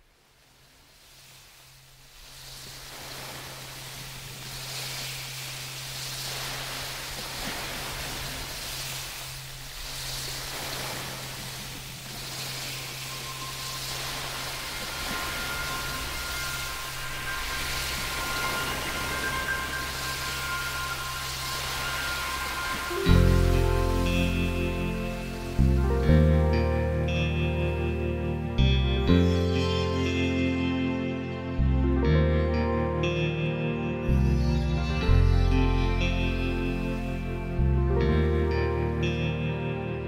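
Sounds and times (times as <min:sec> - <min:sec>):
faint steady tones: 0:00.8 - 0:30.7.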